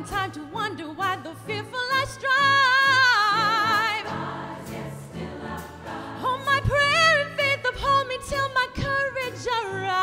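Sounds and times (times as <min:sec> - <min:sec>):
woman singing with vibrato: 0:00.0 - 0:04.0, 0:06.2 - 0:10.0
choir sustained chord: 0:04.0 - 0:06.2.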